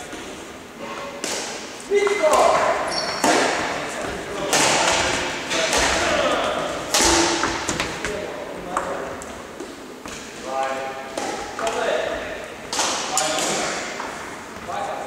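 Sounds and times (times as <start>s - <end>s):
rackets hitting shuttlecock: 1.1s - 3.8s, 4.4s - 8.2s, 11.1s - 14.2s.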